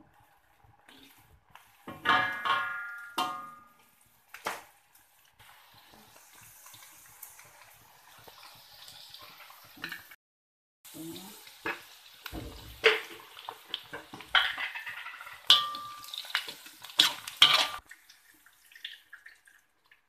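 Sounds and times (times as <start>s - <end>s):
ginger sizzling in hot oil: 0.0s - 10.2s, 10.9s - 20.0s.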